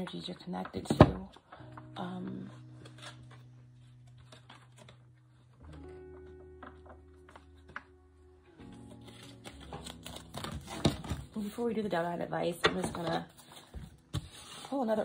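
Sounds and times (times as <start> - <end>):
soft low chord music: 0.0 - 15.0.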